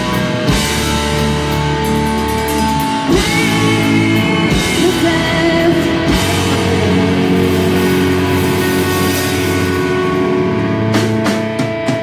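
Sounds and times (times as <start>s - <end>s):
electric guitar ringing chords: 0.0s - 12.0s
live punk rock band: 0.0s - 12.0s.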